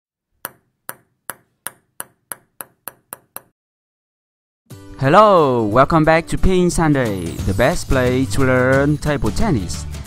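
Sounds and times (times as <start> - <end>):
table tennis ball bouncing: 0.4 - 3.5.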